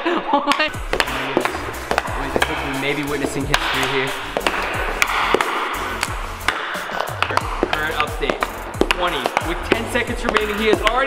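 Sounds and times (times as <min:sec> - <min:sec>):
background music: 0:00.0 - 0:11.0
hockey stick clacking puck: 0:00.5 - 0:11.0.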